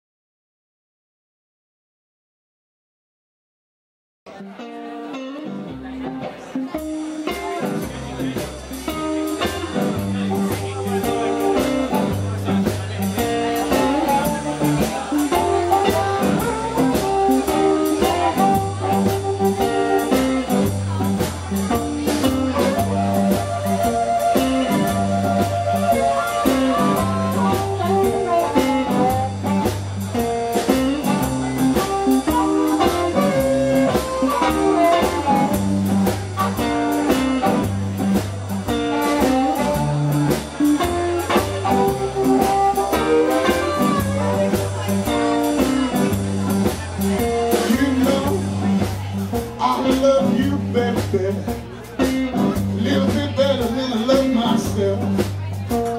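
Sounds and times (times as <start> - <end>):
bass guitar: 4.3 - 55.9
electric guitar lead lines: 4.3 - 55.9
drum kit: 5.6 - 55.9
blues harmonica: 8.8 - 51.0.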